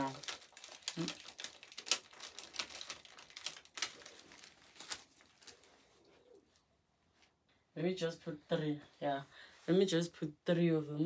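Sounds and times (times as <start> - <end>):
plastic packaging crinkling: 0.0 - 6.1.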